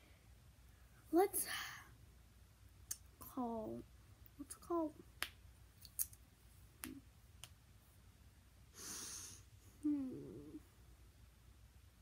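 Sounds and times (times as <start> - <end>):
breathy exhale: 8.8 - 9.4
person humming: 9.8 - 10.6.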